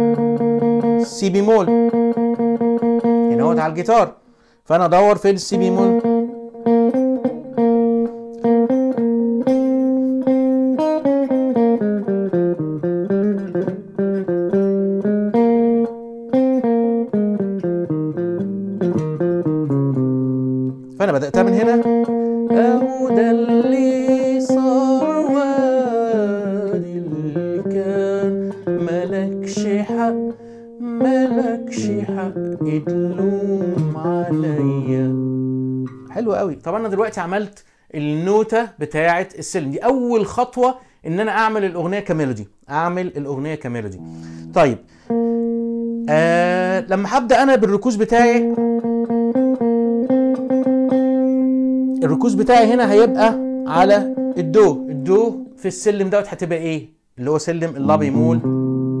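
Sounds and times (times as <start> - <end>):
electric guitar slow melody: 0.0 - 3.8, 5.5 - 36.2, 44.0 - 47.0, 48.2 - 55.6, 57.8 - 59.0
man singing: 22.5 - 35.2, 46.1 - 47.0, 57.8 - 58.5.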